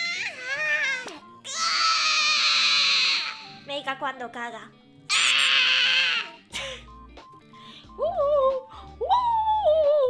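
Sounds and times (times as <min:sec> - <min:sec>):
squeaky cartoon creature call: 0:00.0 - 0:03.5.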